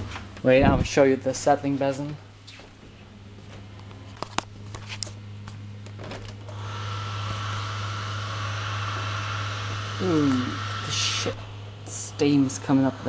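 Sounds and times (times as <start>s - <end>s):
pump low hum: 5.8s - 13.0s.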